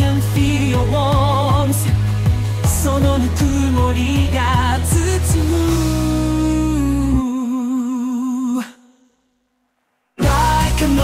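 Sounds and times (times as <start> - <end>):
bass: 0.0 - 7.3, 10.2 - 11.0
synthesized voice singing long note: 10.2 - 11.0.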